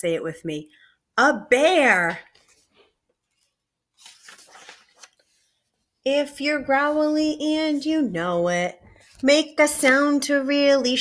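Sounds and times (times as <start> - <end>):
paper page turning: 2.2 - 5.9.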